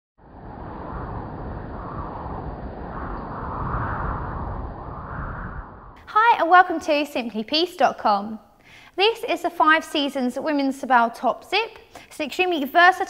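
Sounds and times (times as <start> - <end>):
rushing wind with deep rumble: 0.2 - 6.8.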